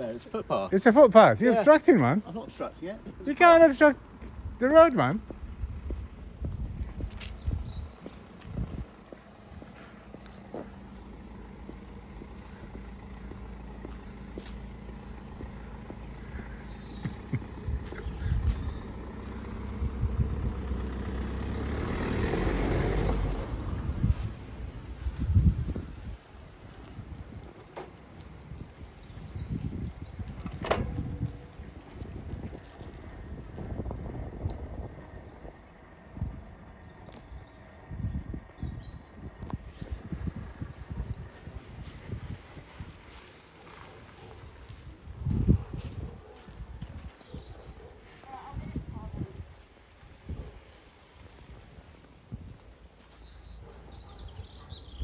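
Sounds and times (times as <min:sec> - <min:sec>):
car engine running: 0:07.5 - 0:25.5
car passing by: 0:12.3 - 0:26.1.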